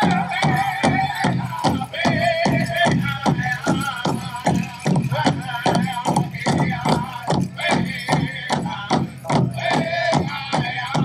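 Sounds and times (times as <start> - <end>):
big drum steady beat: 0.0 - 11.0.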